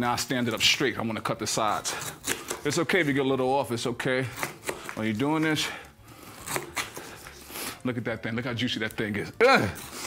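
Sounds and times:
knife cutting pineapple rind: 0:01.4 - 0:07.8.

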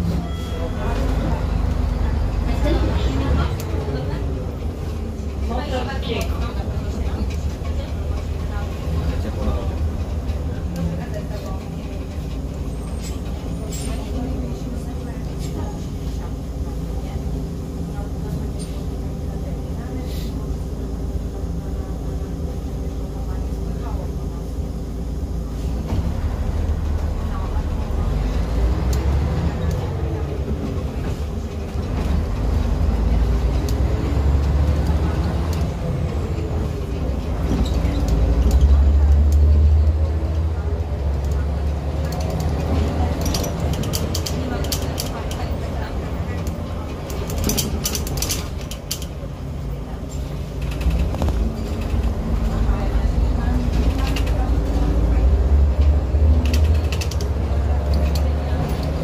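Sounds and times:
bus engine humming: 0:00.0 - 0:59.0.

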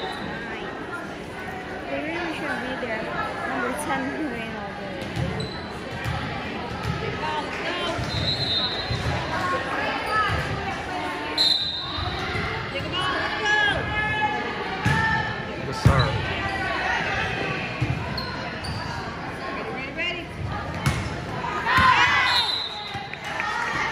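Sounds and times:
spectators talking: 0:00.0 - 0:23.9
volleyball thumping on gym floor: 0:20.7 - 0:22.1.

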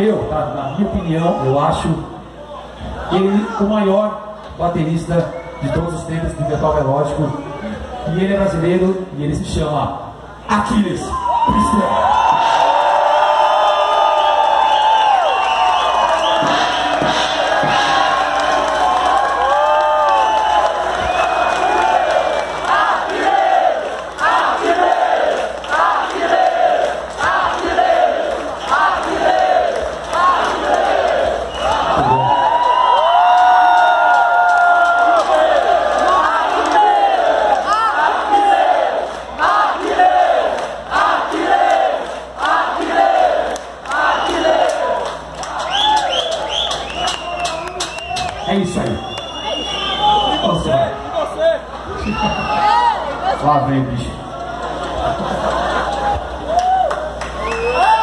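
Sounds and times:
crowd cheering and shouting: 0:10.4 - 0:58.0
crowd chanting: 0:21.6 - 0:32.0, 0:35.1 - 0:45.1.

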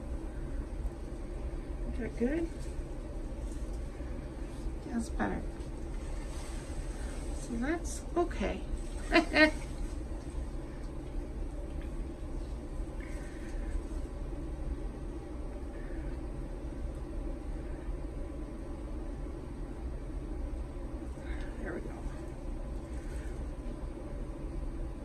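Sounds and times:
steady low hum: 0:00.0 - 0:25.0
air puffs through straw: 0:05.9 - 0:07.6
woman laughing: 0:09.0 - 0:09.7.

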